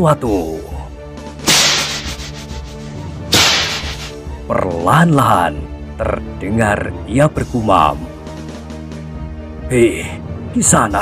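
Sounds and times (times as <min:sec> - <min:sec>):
whip crack: 0:01.4 - 0:04.2.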